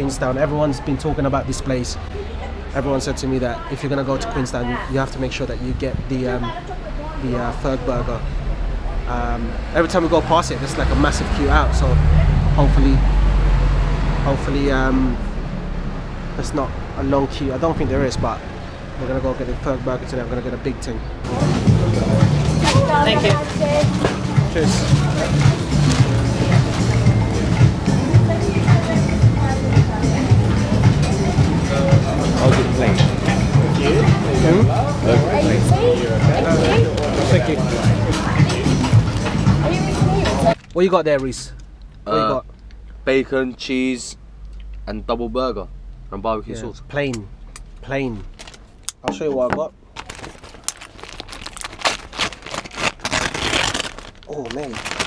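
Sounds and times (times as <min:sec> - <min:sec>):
music with pulsing bass beat: 0:21.3 - 0:40.6
burger wrapper paper crackling: 0:48.3 - 0:48.6, 0:49.9 - 0:55.0
paper bag crinkling and rustling: 0:49.9 - 0:55.0.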